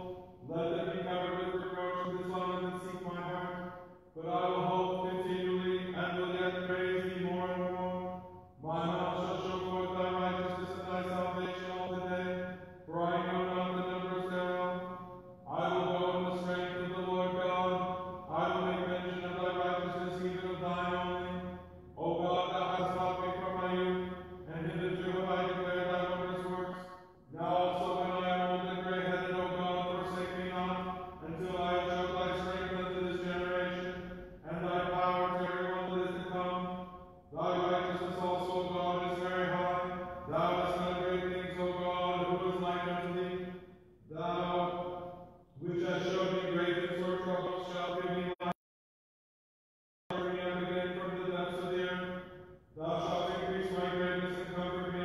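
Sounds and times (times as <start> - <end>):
person chanting liturgy: 0.0 - 48.4, 50.1 - 55.0.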